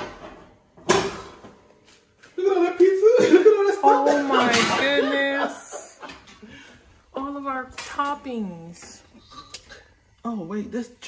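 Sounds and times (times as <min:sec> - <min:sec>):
woman talking: 0:04.2 - 0:06.0, 0:07.1 - 0:09.5, 0:10.2 - 0:11.0.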